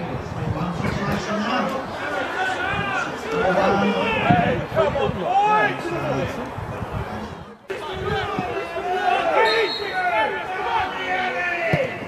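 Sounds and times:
men shouting and calling: 0:00.8 - 0:06.5, 0:07.7 - 0:12.0.

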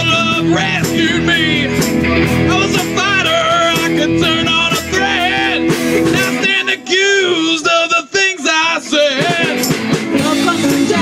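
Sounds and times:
bending melody lines: 0:00.0 - 0:07.8
live rock band playing: 0:00.0 - 0:11.0.

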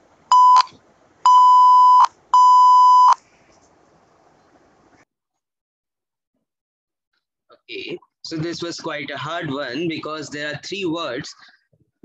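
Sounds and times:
morse code beeps: 0:00.3 - 0:00.7, 0:01.3 - 0:03.2.

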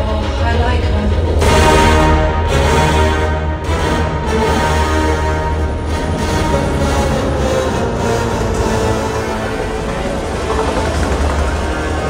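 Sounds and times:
deep bass rumble: 0:00.0 - 0:12.0
loud soundtrack music: 0:00.0 - 0:12.0.

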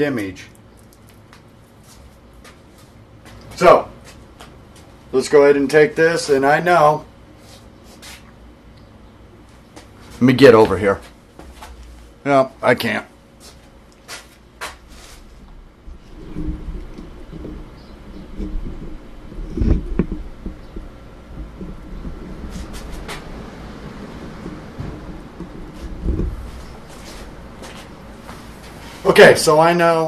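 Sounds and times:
rumbling and knocking of handling: 0:14.6 - 0:28.8.

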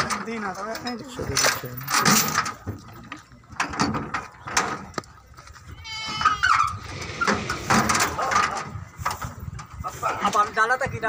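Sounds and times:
knocks and clatter: 0:00.0 - 0:05.0, 0:06.8 - 0:09.7
high-pitched animal call: 0:05.7 - 0:08.3.

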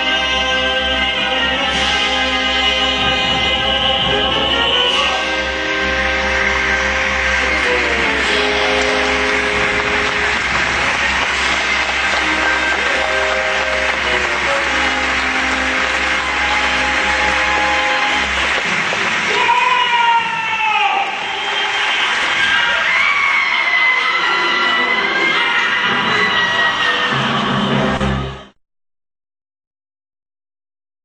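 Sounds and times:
orchestra playing held chords: 0:00.0 - 0:19.6.

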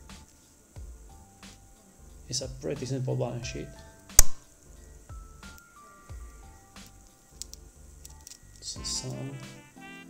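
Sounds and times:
soft background music: 0:00.0 - 0:10.0
sharp loud click: 0:04.1 - 0:04.4.

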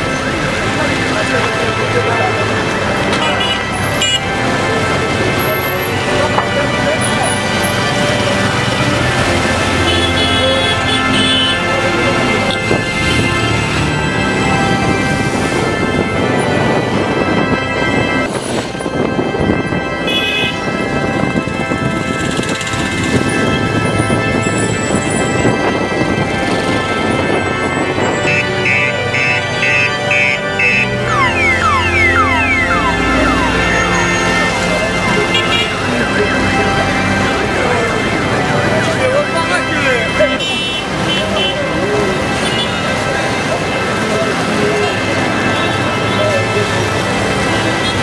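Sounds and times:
background music sustained tones: 0:26.2 - 0:40.1.

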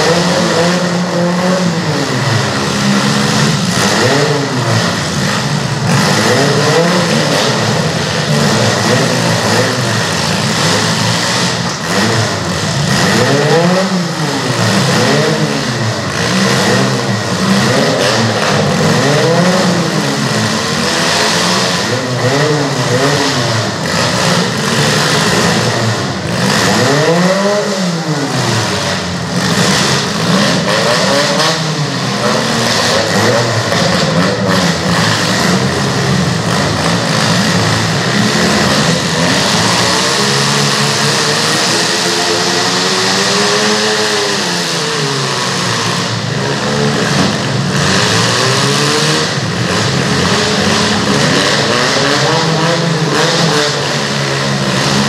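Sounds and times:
cars ramming: 0:00.0 - 0:55.0
small car engines revving: 0:00.0 - 0:55.0.

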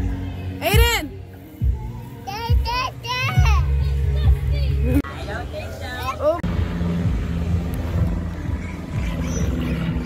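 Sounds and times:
boat motor humming: 0:03.6 - 0:10.0.

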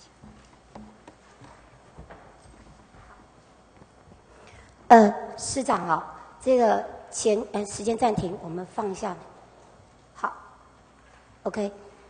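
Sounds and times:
footsteps on hard floor: 0:00.0 - 0:04.3
low room noise: 0:00.0 - 0:12.0
small knocks: 0:00.2 - 0:03.1.

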